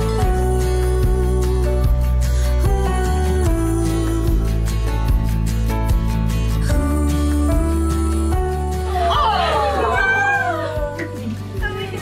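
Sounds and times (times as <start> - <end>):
background music with steady beat: 0.0 - 12.0
women squealing and cooing: 8.8 - 11.6.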